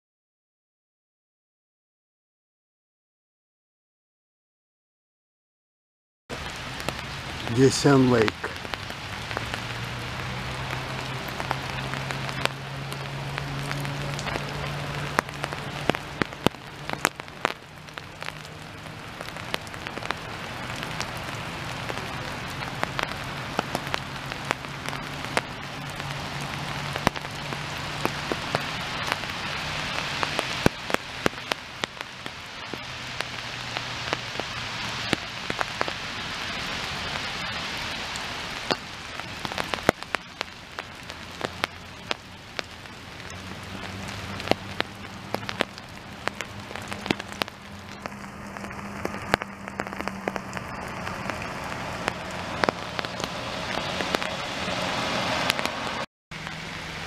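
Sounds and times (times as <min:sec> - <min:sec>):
sharp taps of raindrops: 0:06.3 - 0:57.0
steady rain falling: 0:06.3 - 0:57.0.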